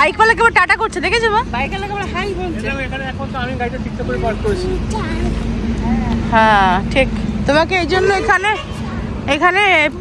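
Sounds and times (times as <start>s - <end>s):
low hum and rumble: 0.0s - 10.0s
voices: 0.0s - 10.0s.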